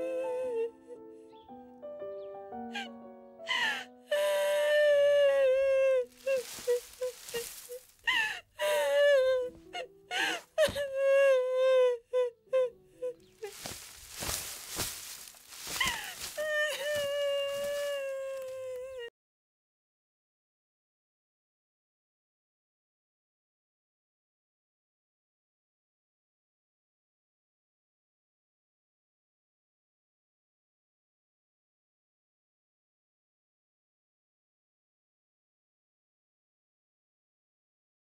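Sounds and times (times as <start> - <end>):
woman wailing and sobbing: 0.0 - 1.0, 2.7 - 19.1
soft background music: 0.0 - 15.6.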